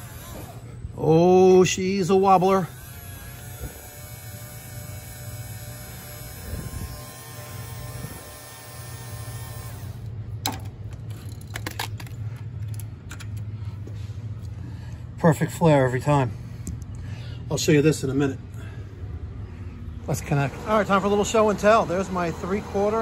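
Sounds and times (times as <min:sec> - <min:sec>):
electric flaring tool running: 0:00.0 - 0:00.9, 0:02.0 - 0:10.2, 0:20.2 - 0:23.0.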